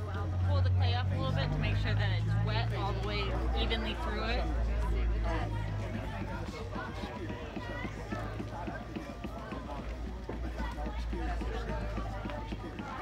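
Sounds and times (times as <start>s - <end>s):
people talking: 0.0s - 13.0s.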